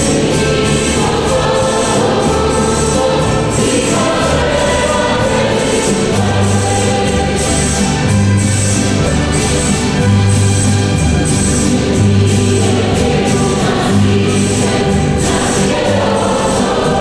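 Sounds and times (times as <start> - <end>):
voices singing a hymn: 0.0 - 8.4, 11.7 - 17.0
steady rhythmic beat: 0.0 - 17.0.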